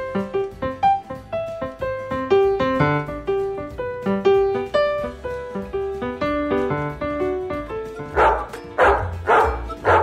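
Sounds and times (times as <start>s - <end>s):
piano music: 0.0s - 10.0s
dog barking: 8.1s - 10.0s.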